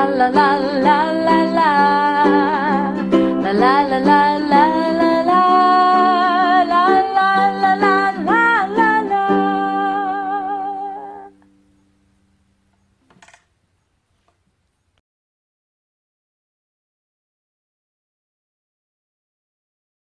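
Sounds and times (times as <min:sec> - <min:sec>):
woman singing with vibrato: 0:00.0 - 0:11.4
ukulele chords: 0:00.0 - 0:11.6.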